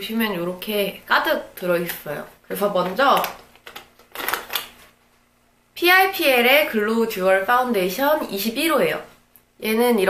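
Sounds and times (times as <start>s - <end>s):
plastic cases clicking and rustling: 3.2s - 4.8s.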